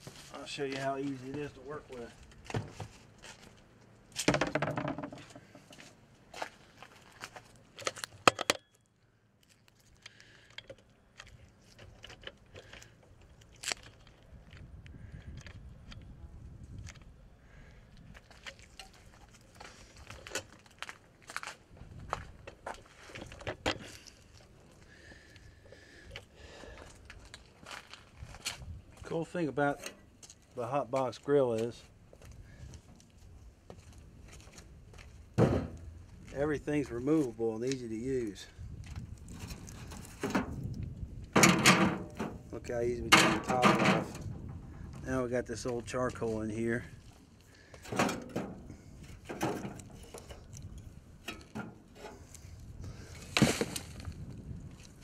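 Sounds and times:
handling clicks and knocks: 7.8 - 8.8, 41.3 - 42.5, 43.1 - 44.6
low wind-like rumble: 14.2 - 18.3, 38.4 - 47.2, 48.4 - 55.0.

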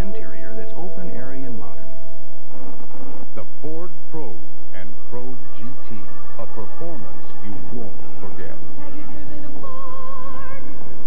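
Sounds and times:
person speaking: 0.0 - 2.0, 3.3 - 9.5
electrical hum: 0.0 - 11.0.

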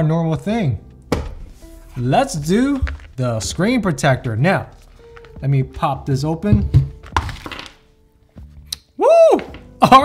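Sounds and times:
packaging rustling: 1.7 - 6.1, 6.7 - 7.8.

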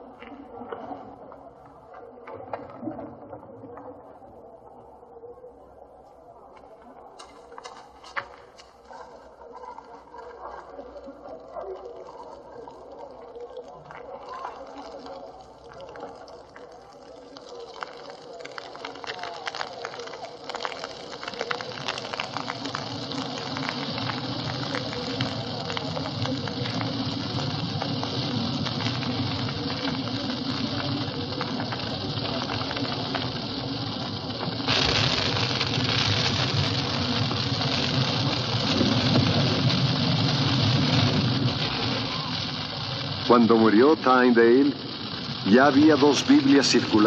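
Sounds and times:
fire crackling: 6.3 - 47.0
flames whooshing: 17.7 - 47.0.

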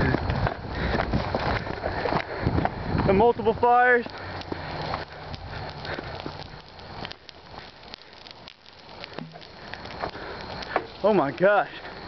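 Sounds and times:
brush fire crackling: 0.0 - 12.0
rustles of movement: 3.9 - 12.0.

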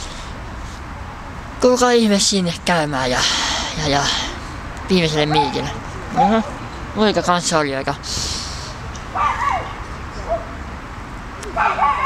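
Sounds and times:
dog barking in high-pitched yips: 11.6 - 12.0.

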